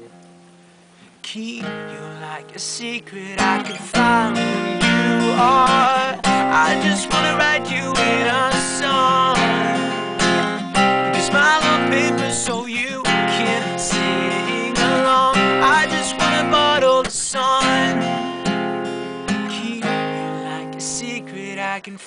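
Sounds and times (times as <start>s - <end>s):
acoustic guitar strumming chords: 0.0s - 22.0s.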